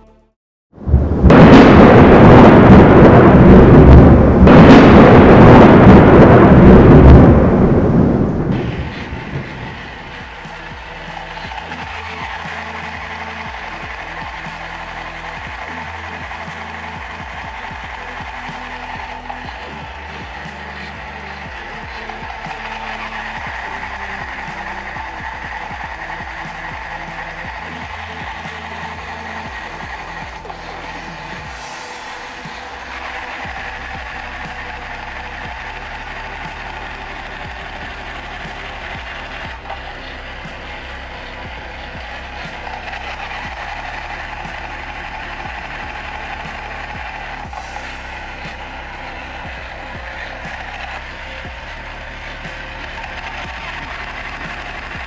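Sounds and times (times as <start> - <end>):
background music: 0.0 - 0.4, 1.1 - 55.0.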